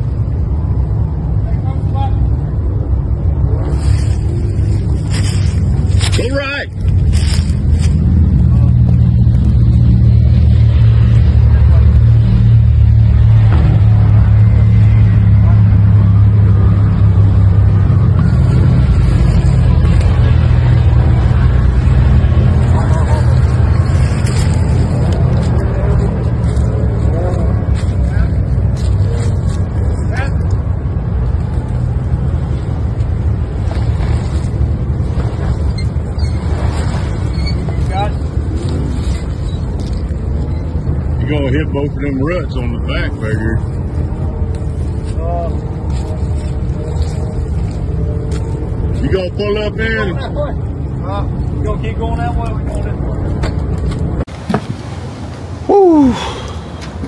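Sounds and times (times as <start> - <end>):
engine running under load: 2.0 - 41.8.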